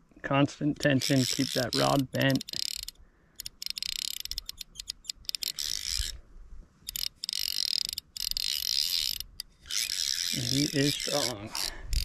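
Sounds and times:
fly reel drag buzzing: 0.8s - 6.2s, 6.8s - 12.0s.

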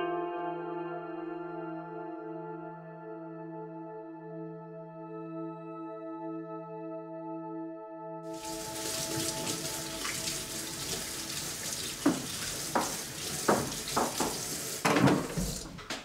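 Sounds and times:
tap running into sink: 8.4s - 16.0s.

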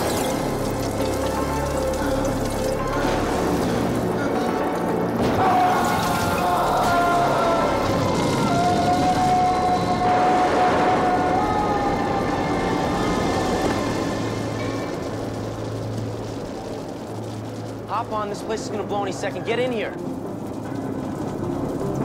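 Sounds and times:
film soundtrack music: 0.0s - 22.0s
fire and explosion effects: 0.0s - 22.0s.

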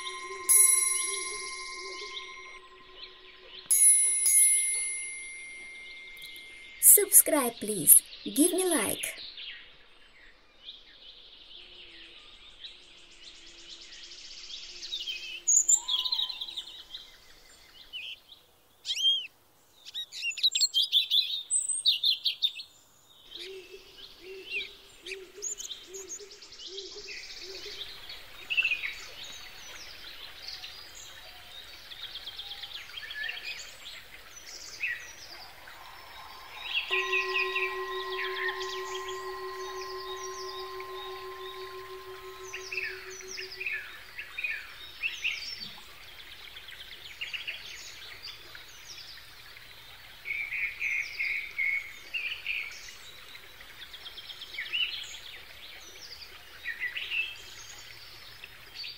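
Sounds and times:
sustained ringing tone: 0.0s - 7.6s, 35.4s - 44.2s.

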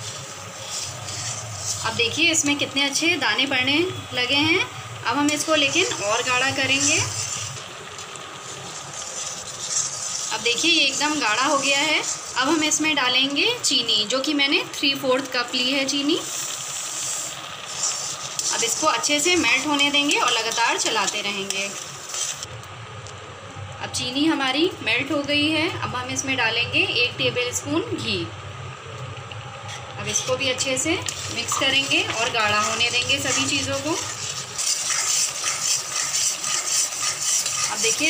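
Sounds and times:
spatula scraping and stirring pan: 0.0s - 3.2s, 5.1s - 13.6s, 16.2s - 22.5s, 29.6s - 38.0s
sugar pouring with hiss: 0.0s - 3.2s, 4.7s - 13.8s, 15.9s - 22.5s, 30.4s - 38.0s
faint sizzle from pan: 0.0s - 38.0s.

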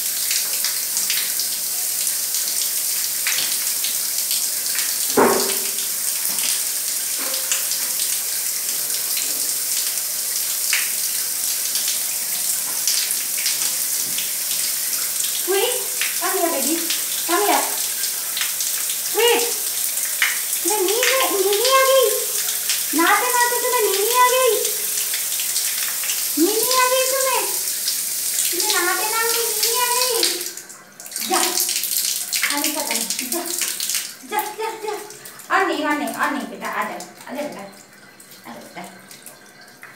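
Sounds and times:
shower water splashing on floor: 0.0s - 39.9s.

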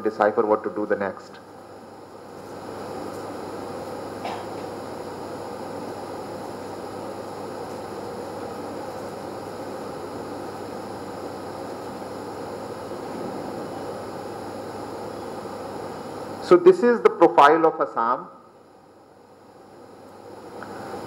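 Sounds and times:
room hum and hiss: 0.0s - 21.0s.

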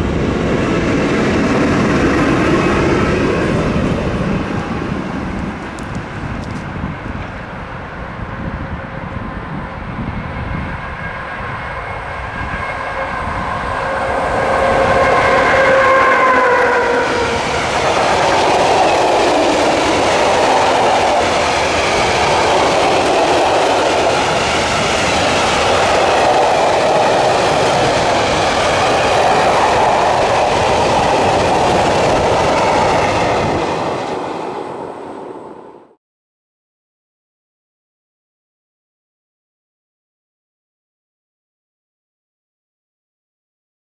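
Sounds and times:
train rumbling by: 0.0s - 36.0s
locomotive horn chord: 11.0s - 17.6s
train wheels clacking on rails: 12.7s - 34.6s.

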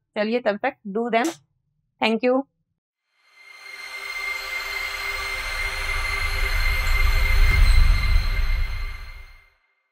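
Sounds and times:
high ringing tones: 3.3s - 9.5s
rush of noise: 4.0s - 9.4s
deep rumble: 5.7s - 9.4s.

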